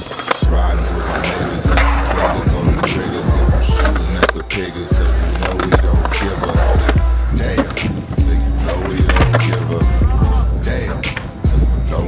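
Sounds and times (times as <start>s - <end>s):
hip hop beat with heavy bass: 0.0s - 12.0s
skateboard wheels rolling on concrete: 0.0s - 12.0s.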